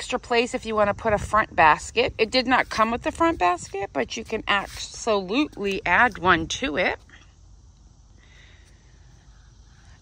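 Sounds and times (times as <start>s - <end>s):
low hum: 0.5s - 10.0s.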